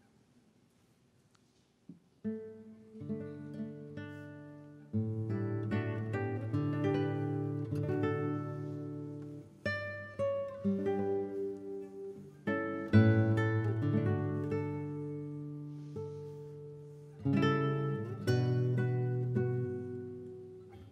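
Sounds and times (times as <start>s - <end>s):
classical guitars playing: 1.8s - 20.9s.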